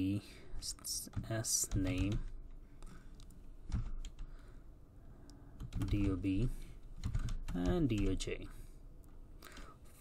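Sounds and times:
keyboard keystrokes: 5.6s - 6.2s, 6.9s - 8.2s.

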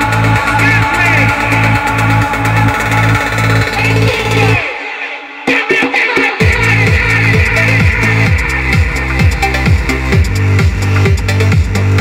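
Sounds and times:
pulsing bass line: 0.0s - 4.7s, 6.4s - 12.0s
electronic dance track: 0.0s - 12.0s.

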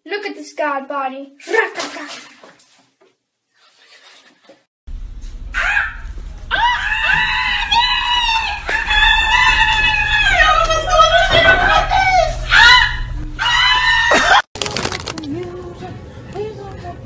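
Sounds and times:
room noise rumble: 4.9s - 14.1s
person screaming: 12.4s - 14.4s.

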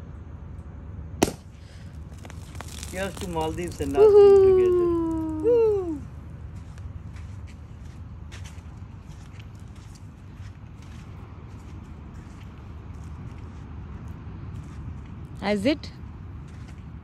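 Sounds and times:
low outdoor rumble: 0.0s - 17.0s
footsteps on sand: 6.5s - 15.2s, 16.4s - 17.0s.

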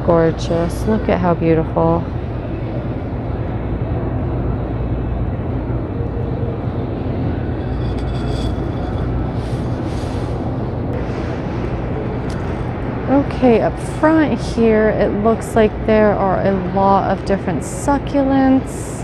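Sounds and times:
store background rumble and hum: 0.0s - 19.0s
faint indistinct sounds: 2.2s - 11.0s.

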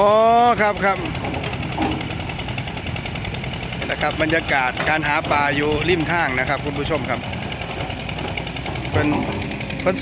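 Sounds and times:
engine-driven water pump running: 0.0s - 10.0s.

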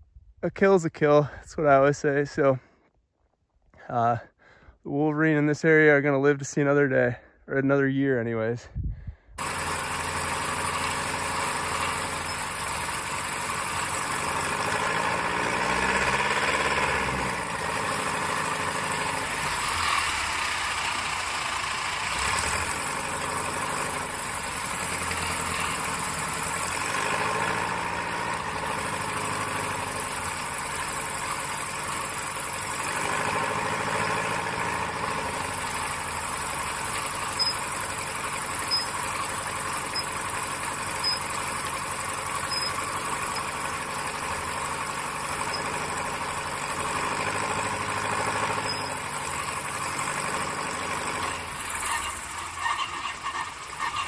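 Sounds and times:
propeller aircraft engine in flight: 9.4s - 52.6s.

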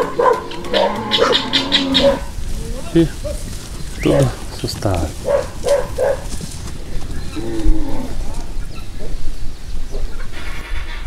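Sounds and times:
cattle mooing: 0.0s - 3.4s, 4.0s - 6.2s, 7.3s - 8.4s.

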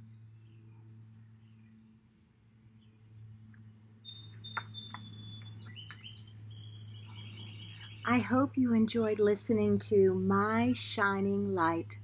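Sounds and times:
steady low hum: 0.0s - 12.0s
songbird singing: 2.7s - 12.0s.

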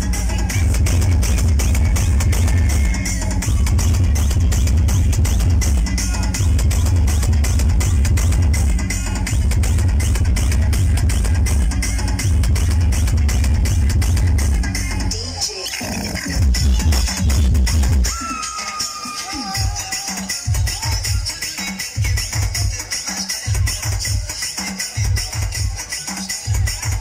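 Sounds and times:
loud electronic dance music: 0.0s - 27.0s.

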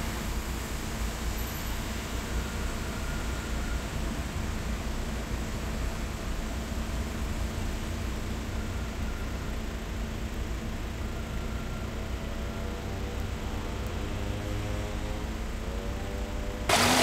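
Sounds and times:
heavy rain hissing: 16.7s - 17.0s.

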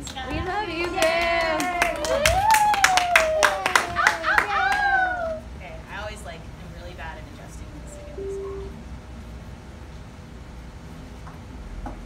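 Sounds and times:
audience clapping: 0.0s - 5.1s
voices cheering: 0.4s - 5.6s.

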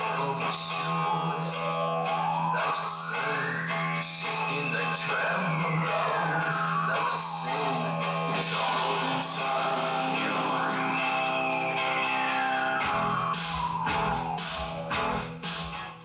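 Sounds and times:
music through car audio system: 0.0s - 16.0s
long rising and falling tone: 1.0s - 16.0s.

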